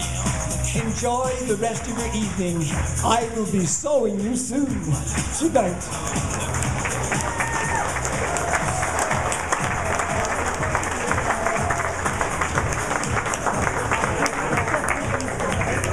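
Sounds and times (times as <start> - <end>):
recorded music: 0.0 - 15.9
audience applauding: 6.2 - 15.9.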